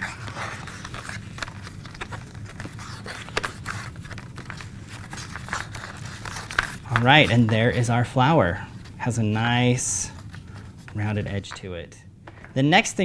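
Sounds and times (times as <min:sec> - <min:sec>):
paper rustling: 0:00.0 - 0:11.7.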